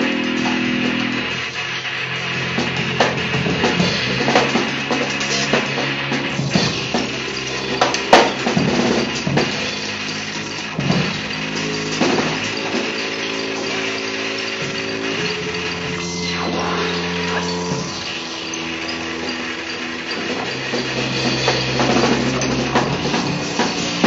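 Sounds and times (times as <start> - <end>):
bowed double bass held tones: 0.0 - 24.0
drum and cymbal hits: 0.0 - 24.0.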